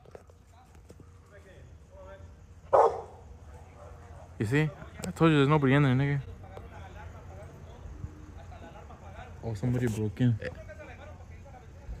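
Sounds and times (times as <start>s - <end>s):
faint background sounds: 0.0s - 12.0s
dog barking: 2.7s - 4.4s.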